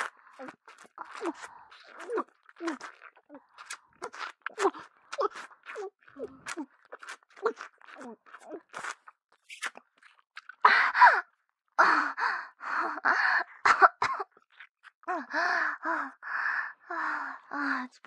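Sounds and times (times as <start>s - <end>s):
woman's mouth noises: 0.0s - 10.6s.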